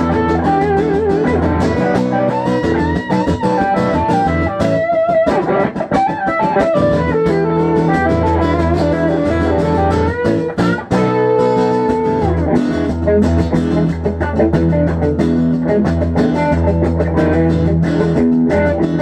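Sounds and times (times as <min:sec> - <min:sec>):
low bass notes: 0:00.0 - 0:04.9, 0:06.6 - 0:19.0
accompanying guitar: 0:00.0 - 0:19.0
electric guitar lead lines: 0:00.0 - 0:19.0.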